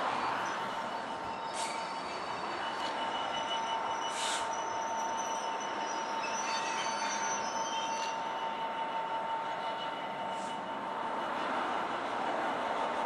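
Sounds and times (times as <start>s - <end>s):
high screech: 0.0s - 10.7s
diesel locomotive engine drone: 0.0s - 13.0s.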